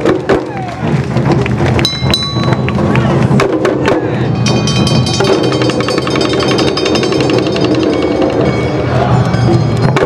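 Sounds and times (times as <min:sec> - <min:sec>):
fast sharp percussion strikes: 0:00.0 - 0:10.0.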